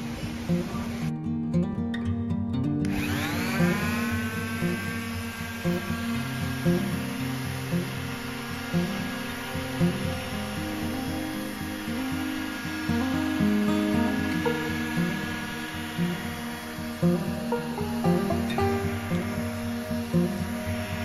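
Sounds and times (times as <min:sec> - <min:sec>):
electric palm sander whining: 0:00.0 - 0:01.1, 0:02.8 - 0:21.0
guitar music: 0:00.0 - 0:21.0.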